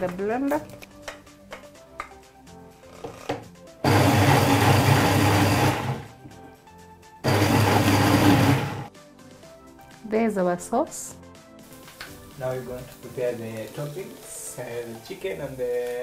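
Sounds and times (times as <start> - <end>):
blender running: 3.8 - 6.2, 7.2 - 8.9.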